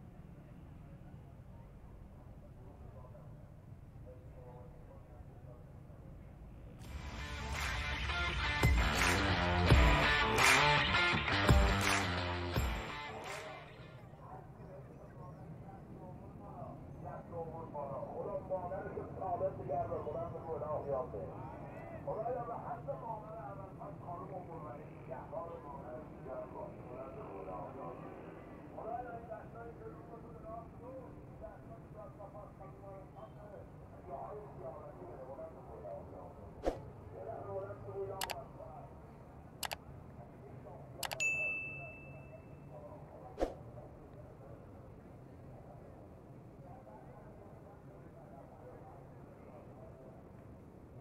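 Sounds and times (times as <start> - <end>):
people talking: 0.7 - 6.4, 12.9 - 50.7
bright bell ding: 41.1 - 42.6.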